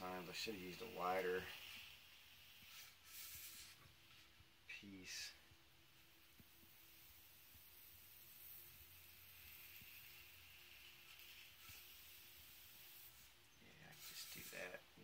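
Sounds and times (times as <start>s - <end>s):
cutter scraping through foam: 0.1s - 3.9s, 7.8s - 14.8s.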